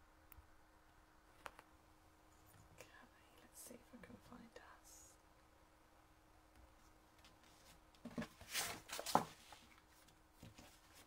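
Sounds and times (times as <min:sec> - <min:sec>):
woman whispering: 0:02.8 - 0:05.2.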